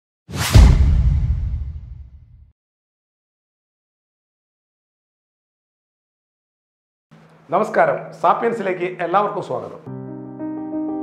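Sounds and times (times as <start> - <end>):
short whoosh: 0.3 - 2.4
deep boom: 0.4 - 2.5.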